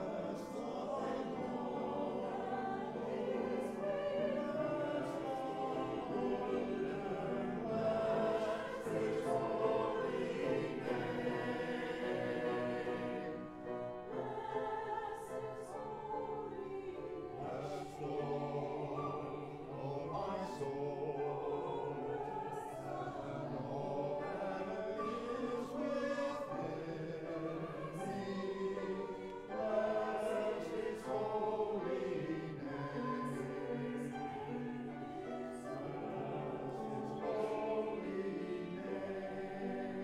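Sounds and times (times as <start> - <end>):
mixed choir singing: 0.0 - 40.0.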